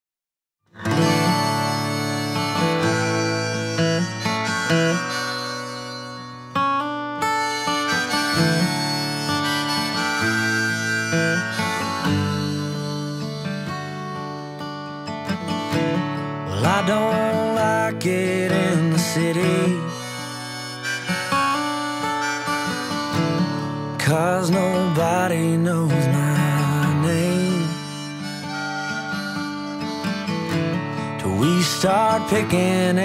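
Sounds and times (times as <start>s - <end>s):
acoustic guitar: 0.7s - 33.0s
harmonica melody: 0.8s - 33.0s
person singing: 16.5s - 30.1s, 30.8s - 33.0s.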